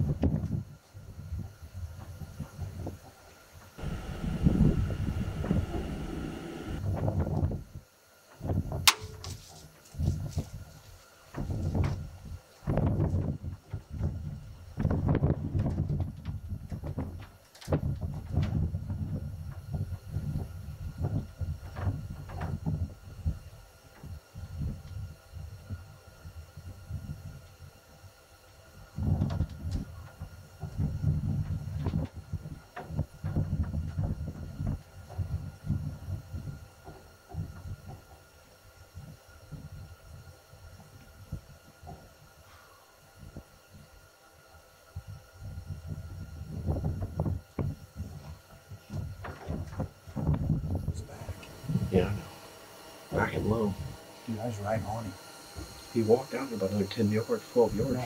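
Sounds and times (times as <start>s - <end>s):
wind buffeting microphone: 3.8s - 7.6s.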